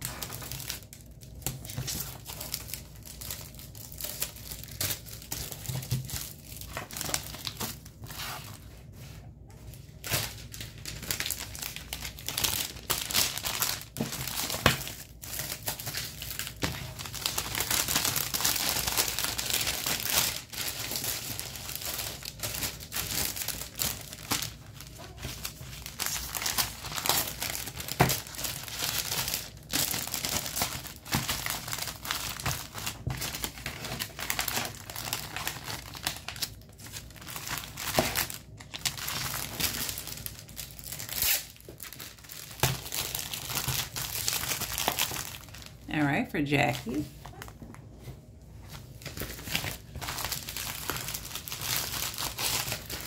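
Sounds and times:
plastic packaging crinkling: 0.0s - 45.9s, 46.5s - 53.0s.

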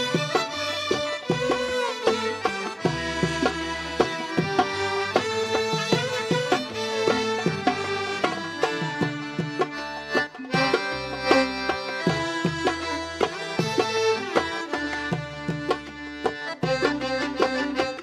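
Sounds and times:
bowed violin melody: 0.0s - 18.0s
hand percussion: 0.0s - 18.0s.

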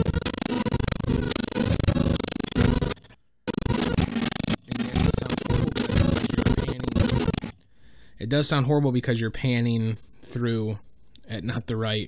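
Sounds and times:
garbled stuttering audio scrubbing: 0.0s - 7.6s.

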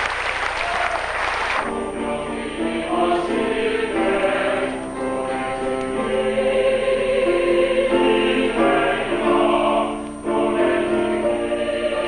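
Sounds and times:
choir singing sustained chords: 1.3s - 12.0s.

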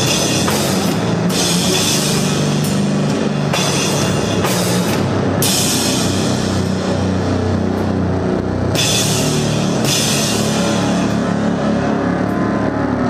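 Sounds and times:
crashing cymbals: 0.0s - 11.9s
distorted bass and drums: 0.0s - 13.0s.

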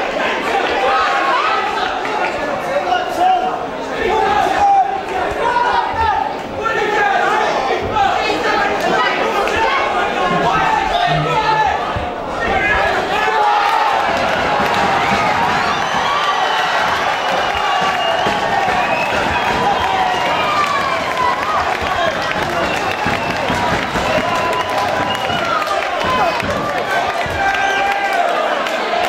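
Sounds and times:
crowd shouting and cheering: 0.0s - 29.0s.

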